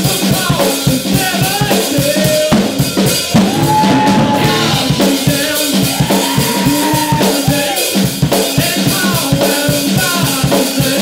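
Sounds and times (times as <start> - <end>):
drum kit beat: 0.0 - 11.0
person singing: 0.0 - 11.0
electric guitar: 2.8 - 7.7.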